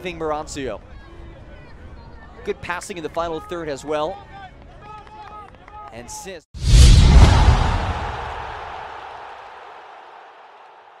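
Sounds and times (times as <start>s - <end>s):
hissing swoosh: 6.6s - 8.8s
deep impact hit: 6.6s - 8.9s.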